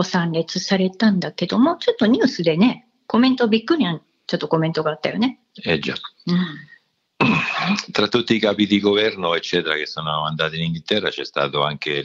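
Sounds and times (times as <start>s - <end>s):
person talking: 5.6s - 12.0s
person clearing throat: 7.2s - 8.0s.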